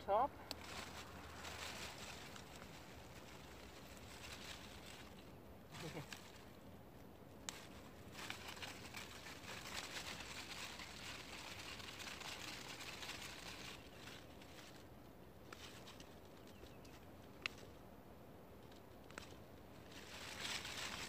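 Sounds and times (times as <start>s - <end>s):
rustling of dry leafy stalks: 0.0s - 21.0s.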